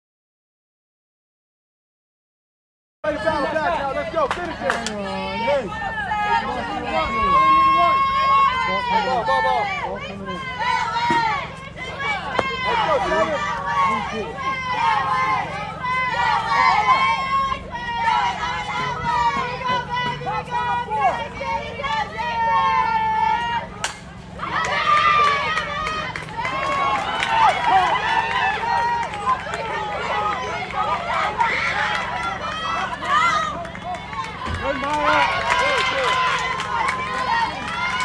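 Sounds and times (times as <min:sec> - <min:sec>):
people yelling and cheering: 0:03.1 - 0:38.0
bat striking softball: 0:12.0 - 0:13.1, 0:23.8 - 0:24.8.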